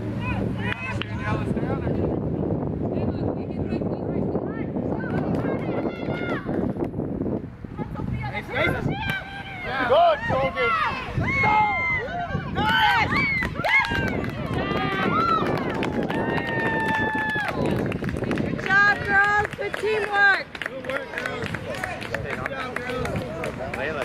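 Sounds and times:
spectators shouting and cheering: 0:04.6 - 0:06.8, 0:08.4 - 0:24.0.

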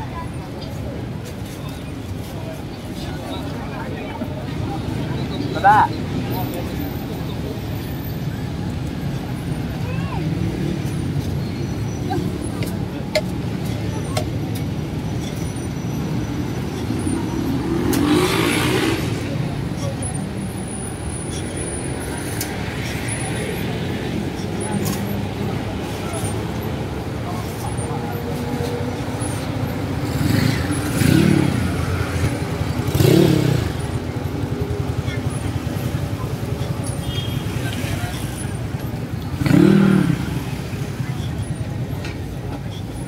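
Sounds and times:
crowd voices: 0:00.0 - 0:43.0
motorbikes: 0:00.0 - 0:43.0
road traffic: 0:00.0 - 0:43.0.

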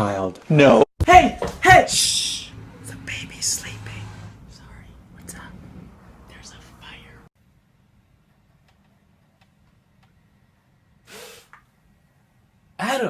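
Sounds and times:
man whispering: 0:02.0 - 0:07.3.

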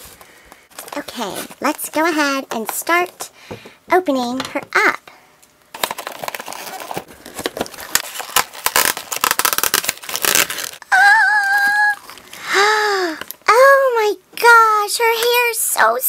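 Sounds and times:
plastic packaging crinkling: 0:00.0 - 0:03.2, 0:05.7 - 0:10.8.

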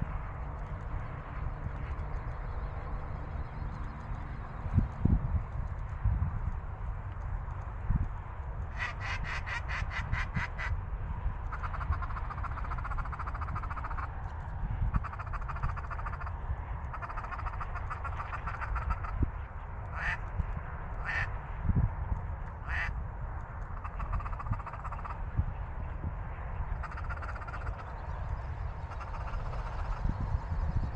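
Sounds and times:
wind rumble on microphone: 0:00.0 - 0:30.9
geese honking and clucking: 0:08.7 - 0:10.8, 0:11.5 - 0:14.1, 0:14.9 - 0:19.3, 0:19.9 - 0:20.3, 0:21.0 - 0:21.4, 0:22.6 - 0:23.0, 0:23.8 - 0:25.2, 0:26.7 - 0:27.9, 0:28.8 - 0:30.2.

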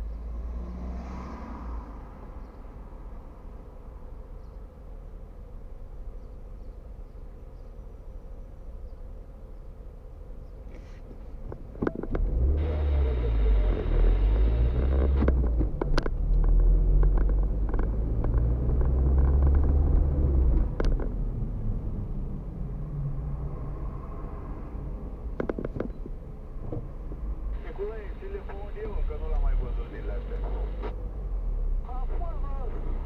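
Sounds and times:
car engine accelerating: 0:00.0 - 0:03.4, 0:11.6 - 0:33.0.

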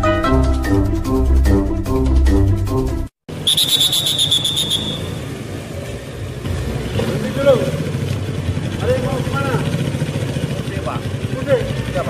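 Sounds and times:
trilling whistle blast: 0:03.4 - 0:05.2
motorcycle engine running: 0:06.3 - 0:12.0.

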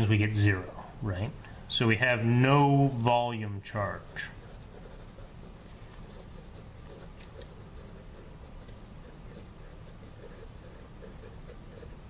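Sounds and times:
low room hum: 0:00.0 - 0:12.0
pen scratching on paper: 0:04.2 - 0:12.0.

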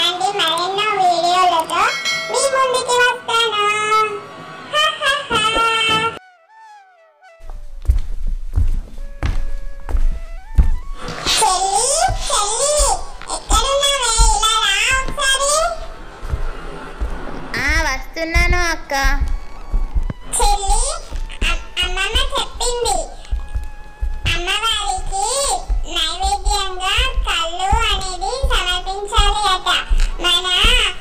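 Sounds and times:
high-pitched voice singing: 0:04.8 - 0:06.2
high child-like voice singing: 0:24.2 - 0:31.0.

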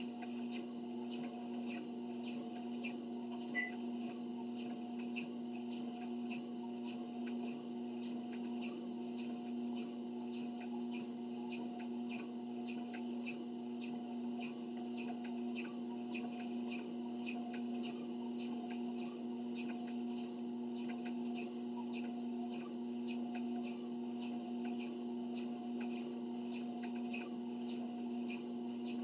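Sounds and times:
treadmill motor humming: 0:00.0 - 0:29.0
short beep: 0:03.6 - 0:03.8.

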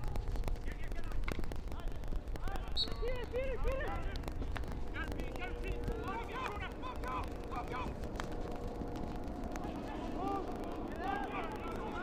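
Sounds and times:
players shouting: 0:09.6 - 0:12.0.

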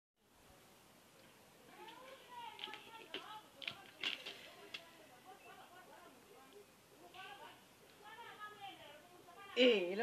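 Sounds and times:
faint background hiss: 0:00.2 - 0:10.0.

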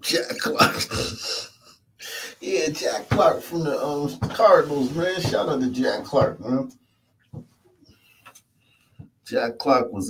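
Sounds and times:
man chuckling quietly: 0:00.5 - 0:01.5.

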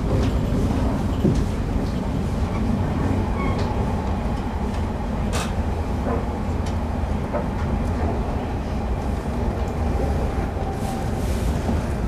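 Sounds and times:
train wheels rumbling: 0:00.0 - 0:12.0.

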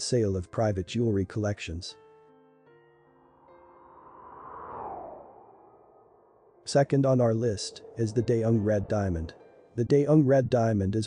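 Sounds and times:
whoosh swish: 0:03.5 - 0:09.4.

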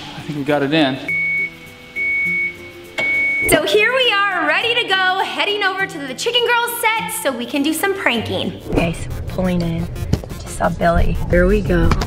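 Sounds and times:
quiet background music: 0:00.0 - 0:12.0
high-pitched electronic beeps: 0:01.1 - 0:03.7.

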